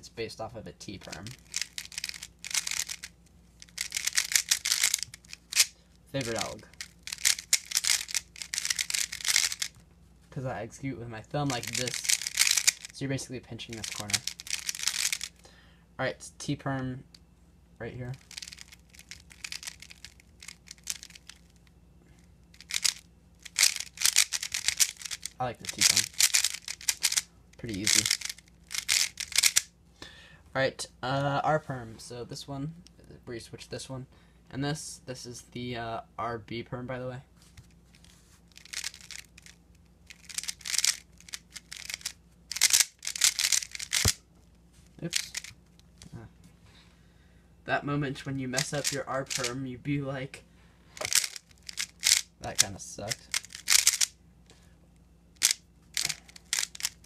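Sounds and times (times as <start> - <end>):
puzzle cube plastic clicks: 1.0 - 9.8, 11.5 - 13.0, 13.7 - 15.4, 18.2 - 21.5, 22.6 - 29.7, 38.6 - 44.2, 45.1 - 46.1, 48.6 - 49.5, 51.0 - 54.1, 55.4 - 57.0.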